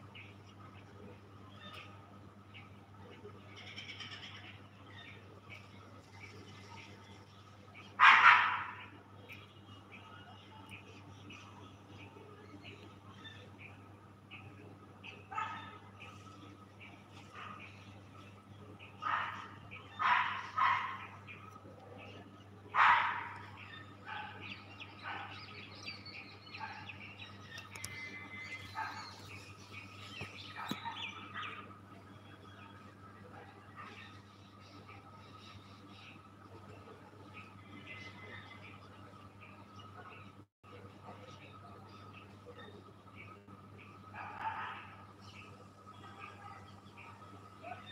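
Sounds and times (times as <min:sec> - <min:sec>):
steady low hum: 0:00.0 - 0:47.9
dog barking: 0:08.0 - 0:08.9, 0:15.3 - 0:15.8, 0:17.3 - 0:17.7, 0:19.0 - 0:21.2, 0:22.7 - 0:25.5, 0:26.6 - 0:27.0, 0:28.8 - 0:29.2, 0:44.1 - 0:45.0, 0:46.0 - 0:47.9
bird chirps: 0:22.8 - 0:32.9.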